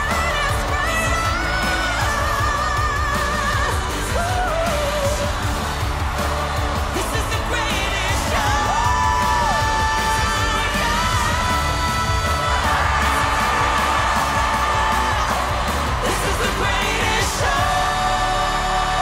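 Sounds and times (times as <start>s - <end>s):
live pop singing: 0.0s - 19.0s
loud full band: 0.0s - 19.0s.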